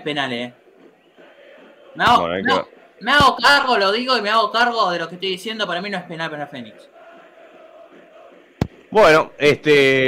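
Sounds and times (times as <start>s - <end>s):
faint stadium crowd chanting: 0.0s - 9.4s.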